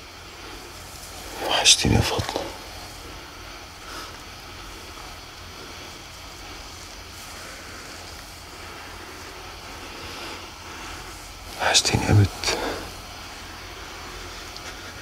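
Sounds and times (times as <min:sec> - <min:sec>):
constant low hum: 0:00.0 - 0:15.0.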